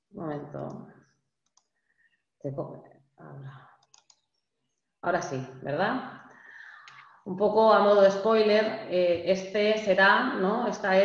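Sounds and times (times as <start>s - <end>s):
faint computer clicks: 3.8s - 4.2s.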